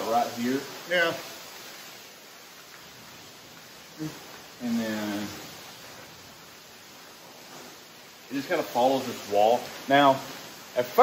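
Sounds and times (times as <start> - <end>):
rain hiss on building: 0.0 - 11.0.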